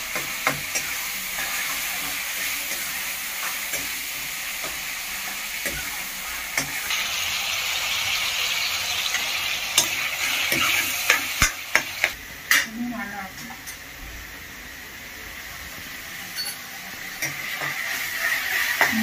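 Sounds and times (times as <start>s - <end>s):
tomatoes sizzling in oil: 0.0s - 19.0s.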